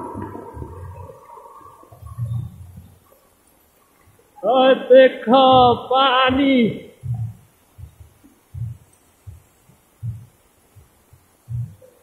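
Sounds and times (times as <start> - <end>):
water rushing down a wall: 0.0 - 4.4
dull thuds of walking steps: 1.9 - 3.0, 5.4 - 12.0.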